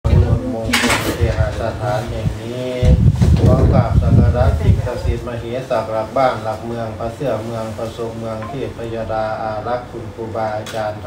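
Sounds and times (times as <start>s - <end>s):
man intoning a blessing: 8.4s - 9.1s.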